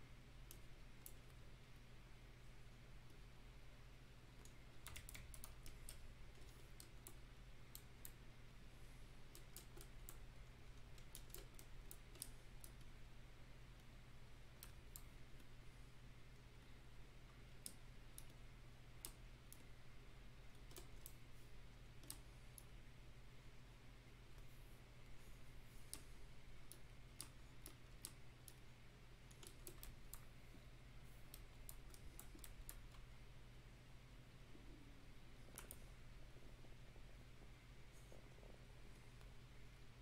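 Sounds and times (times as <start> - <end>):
low electrical hum: 0.0 - 40.0
keyboard and mouse clicks: 4.4 - 8.2, 9.2 - 12.9, 14.5 - 15.6, 17.4 - 19.7, 20.5 - 22.8, 25.7 - 30.3, 31.1 - 33.1, 35.4 - 36.0.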